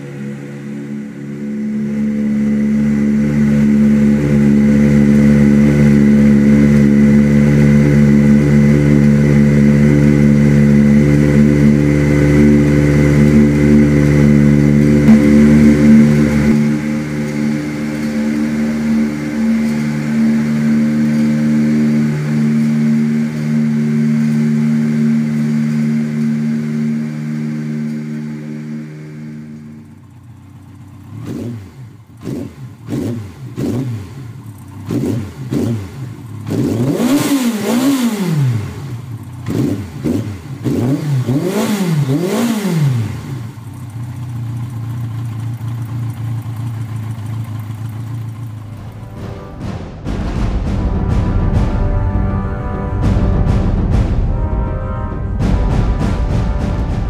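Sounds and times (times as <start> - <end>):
motorcycle throttle blips and revs: 0.0 - 49.6
motorcycle engine idling: 0.0 - 52.2.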